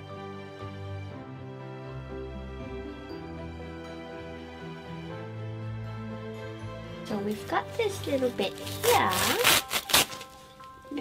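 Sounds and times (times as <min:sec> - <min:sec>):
background music: 0:00.0 - 0:11.0
diaper padding ripping: 0:08.1 - 0:11.0.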